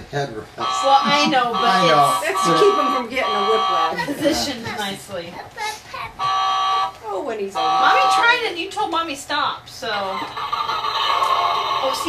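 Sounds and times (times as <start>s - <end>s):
buzzy electronic engine tone: 0.6s - 4.6s, 7.5s - 8.6s, 10.2s - 12.0s.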